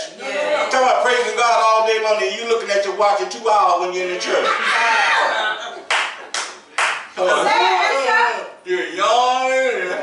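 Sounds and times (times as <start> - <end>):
person clapping hands: 5.9 - 7.1.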